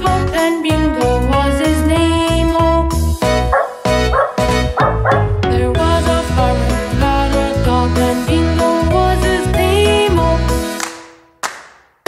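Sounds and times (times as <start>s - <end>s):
children's song music: 0.0s - 11.7s
dog barking: 3.5s - 5.3s.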